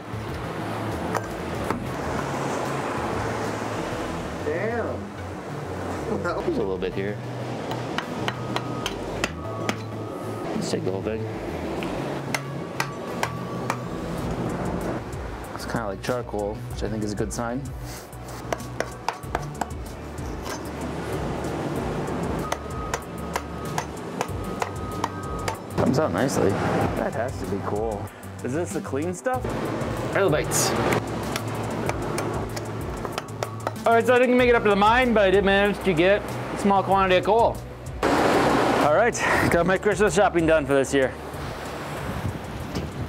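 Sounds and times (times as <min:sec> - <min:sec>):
steel pick striking rock: 0:07.7 - 0:09.9, 0:18.4 - 0:19.8, 0:22.5 - 0:25.6, 0:30.9 - 0:33.8
rock hammer tapping rock: 0:18.5 - 0:19.8, 0:31.3 - 0:33.8.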